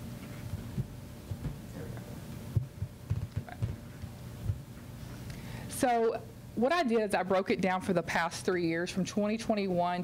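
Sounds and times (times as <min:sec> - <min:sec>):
low room hum: 0:00.0 - 0:10.0
dull thumps: 0:02.5 - 0:03.8.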